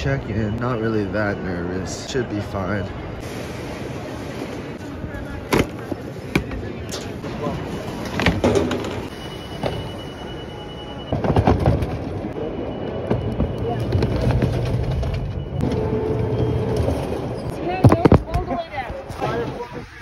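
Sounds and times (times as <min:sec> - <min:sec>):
people talking: 0:00.0 - 0:03.0, 0:03.7 - 0:08.3, 0:17.6 - 0:20.0.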